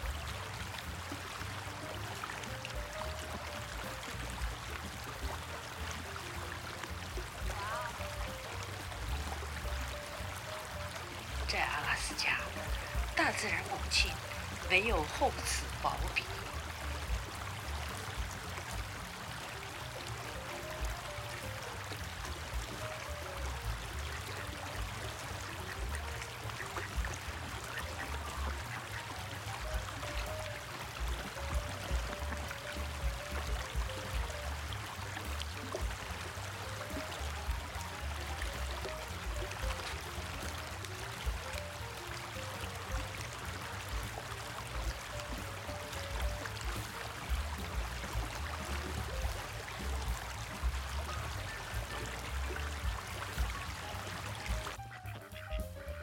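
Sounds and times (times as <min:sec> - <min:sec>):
creek running over stones: 0:00.0 - 0:56.0
soft background music: 0:00.0 - 0:56.0.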